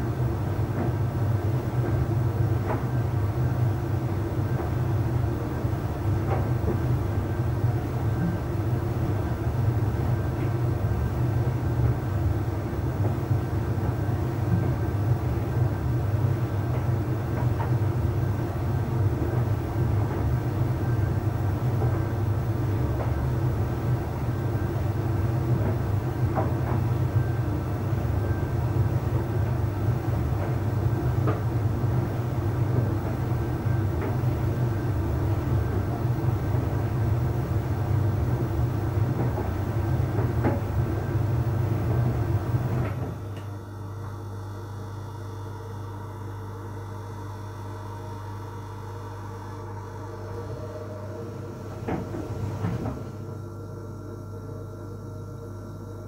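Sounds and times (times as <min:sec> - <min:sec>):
tumble dryer drum rumbling: 0:00.0 - 0:43.4, 0:48.4 - 0:53.5
machine hum: 0:00.0 - 0:56.0.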